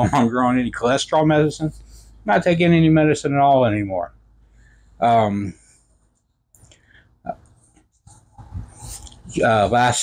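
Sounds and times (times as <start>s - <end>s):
man breathing in: 4.5s - 5.0s.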